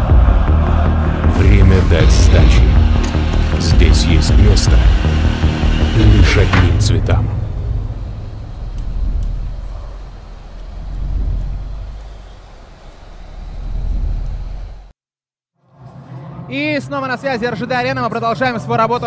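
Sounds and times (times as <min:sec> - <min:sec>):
sharp whooshing hits: 0:00.0 - 0:10.3
heavy low boom: 0:00.0 - 0:12.1
deep rumble: 0:00.0 - 0:14.9.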